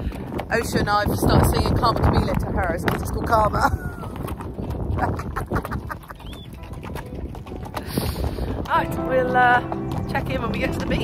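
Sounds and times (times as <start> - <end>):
horse hooves clopping on stony track: 0.0 - 11.0.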